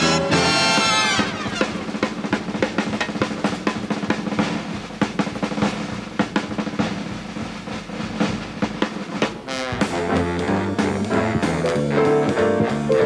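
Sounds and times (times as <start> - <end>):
drum kit solo: 0.0 - 13.0.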